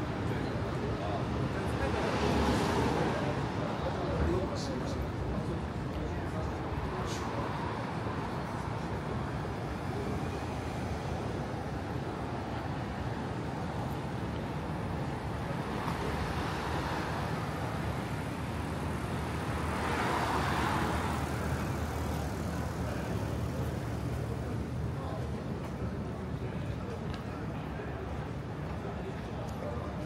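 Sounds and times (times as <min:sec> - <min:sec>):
city street traffic: 0:00.0 - 0:30.0.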